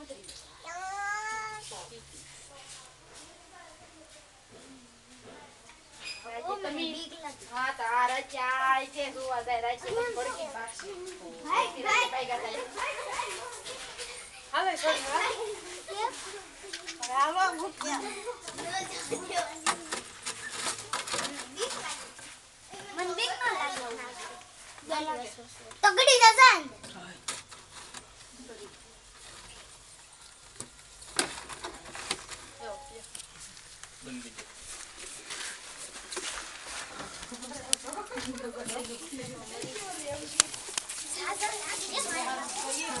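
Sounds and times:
people talking and calling out: 0.0 - 27.5, 36.3 - 43.0.

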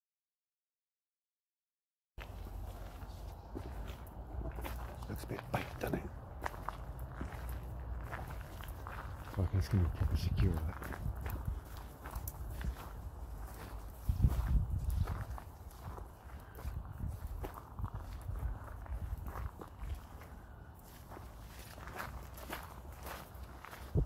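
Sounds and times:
footsteps on gravel: 2.2 - 24.0.

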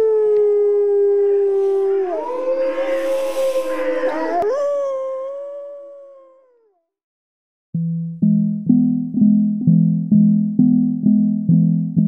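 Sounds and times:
wolves howling: 0.0 - 6.7.

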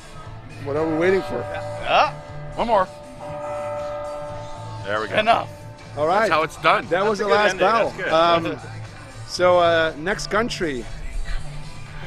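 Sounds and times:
clock-tower bell chime: 0.8 - 7.3.

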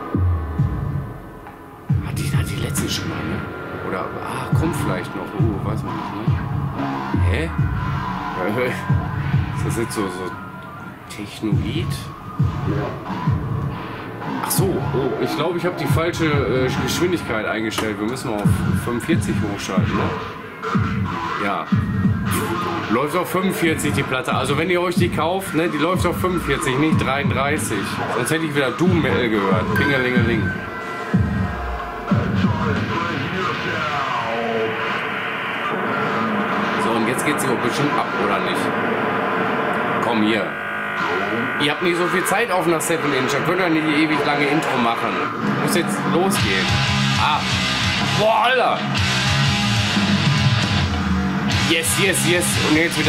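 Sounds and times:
dense drone with gliding tones: 1.0 - 21.4, 27.6 - 48.6
slowed down metal music: 34.7 - 53.0.

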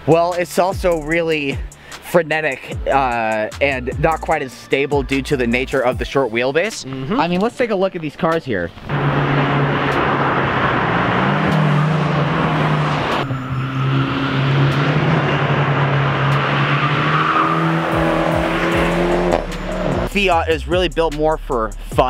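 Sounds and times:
road and wind noise: 6.2 - 20.1
car engine driving: 6.7 - 20.4.

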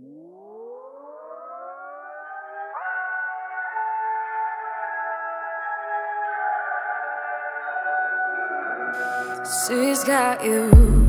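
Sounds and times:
siren-like rising tones: 0.0 - 10.2.

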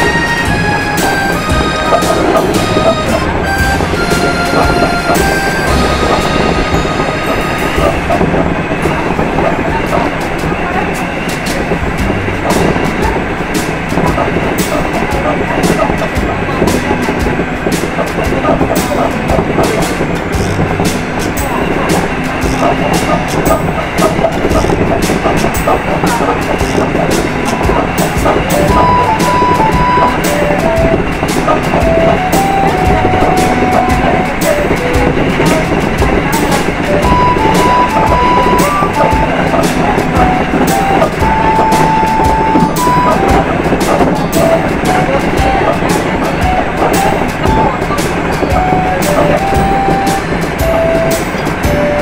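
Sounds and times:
electric train running: 0.0 - 52.0
wheels clicking over rail joints: 0.0 - 52.0.

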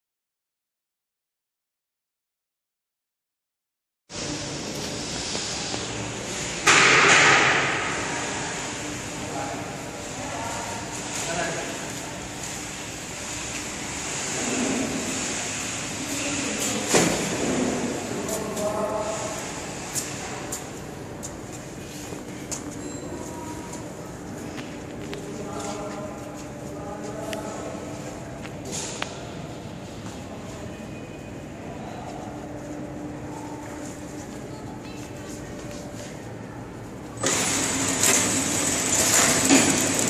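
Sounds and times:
packing machines humming: 37.2 - 40.0.

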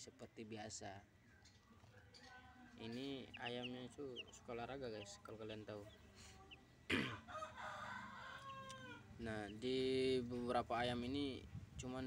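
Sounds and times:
faint chick peep: 0.1 - 11.5
rooster crowing: 7.3 - 9.1.

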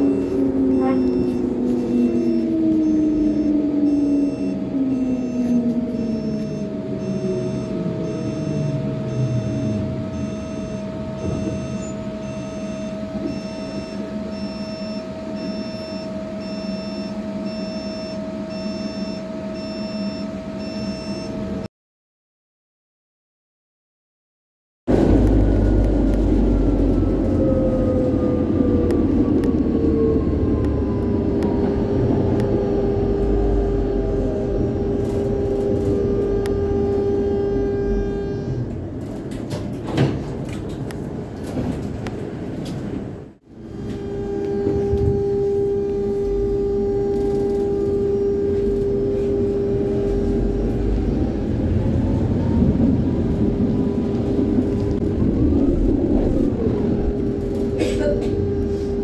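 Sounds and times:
tram rumble: 0.0 - 17.8, 24.9 - 59.0
electric motor whine: 43.6 - 51.8.

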